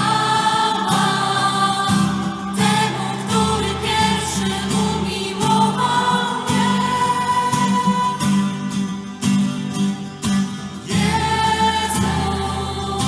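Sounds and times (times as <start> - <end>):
group singing a hymn: 0.0 - 8.8, 10.8 - 13.0
strummed guitar: 0.0 - 13.0.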